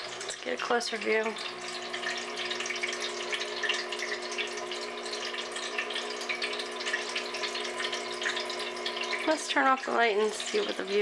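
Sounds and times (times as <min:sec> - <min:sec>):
electric pump humming: 0:00.0 - 0:11.0
water trickling and splashing: 0:00.0 - 0:11.0.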